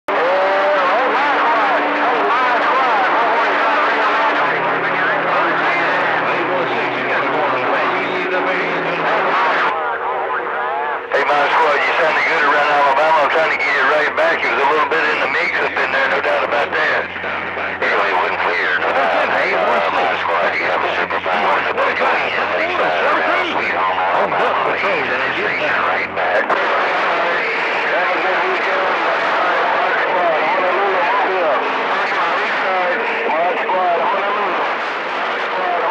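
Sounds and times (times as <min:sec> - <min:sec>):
garbled radio voices: 0:00.1 - 0:35.9
radio static: 0:00.1 - 0:35.9
steady humming tones: 0:00.2 - 0:35.9.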